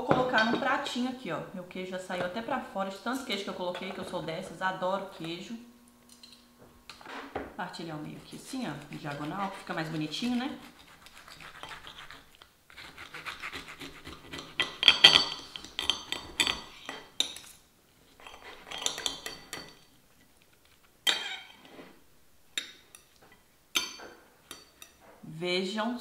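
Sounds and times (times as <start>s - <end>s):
knife scraping ceramic plate: 8.4s - 19.9s, 21.0s - 22.0s
knife sawing through sandwich: 8.8s - 14.6s
cutlery clinking on plate: 14.6s - 17.6s, 18.2s - 19.9s, 22.6s - 25.0s.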